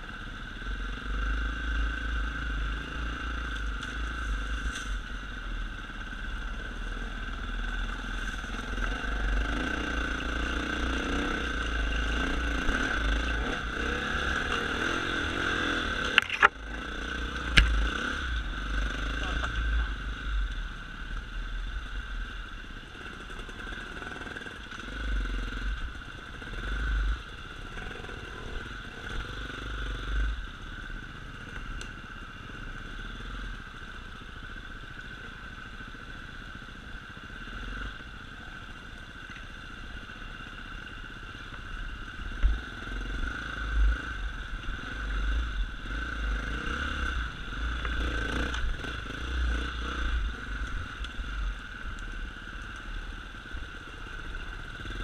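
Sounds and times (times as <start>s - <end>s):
motorcycle engine revving: 0.0s - 33.9s, 39.7s - 55.0s.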